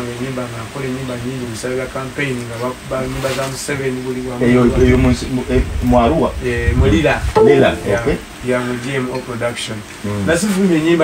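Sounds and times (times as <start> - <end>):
man talking: 7.4 - 9.1.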